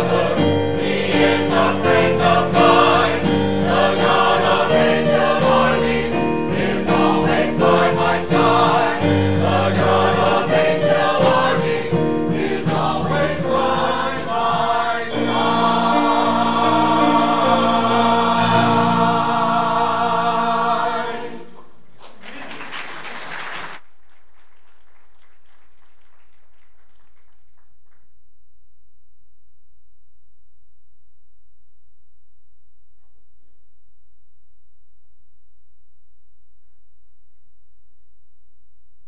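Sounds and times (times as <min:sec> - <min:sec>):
musical accompaniment: 0:00.0 - 0:21.4
choir singing in harmony: 0:00.0 - 0:21.8.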